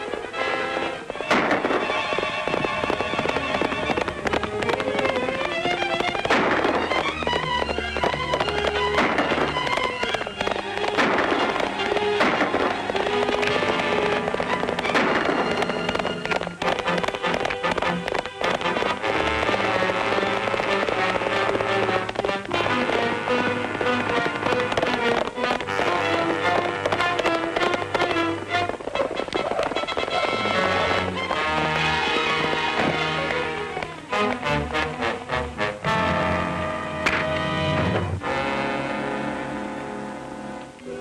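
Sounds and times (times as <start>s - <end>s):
sharp cracks: 0.0s - 38.3s
orchestral music: 0.0s - 41.0s.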